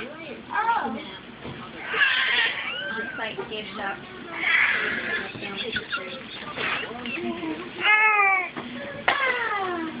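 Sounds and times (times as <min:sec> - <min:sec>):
baby squealing: 0:01.8 - 0:03.2, 0:04.4 - 0:05.3.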